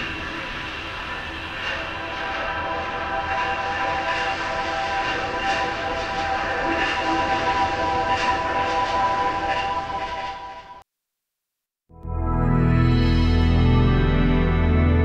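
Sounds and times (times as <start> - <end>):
rushing train-like noise: 0.0 - 10.8.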